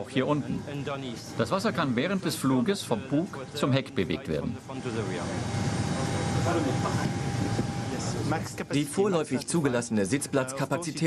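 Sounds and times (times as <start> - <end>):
faint voices: 0.0 - 9.3
thin constant whine: 0.0 - 11.0
aircraft cabin roar: 5.0 - 8.6.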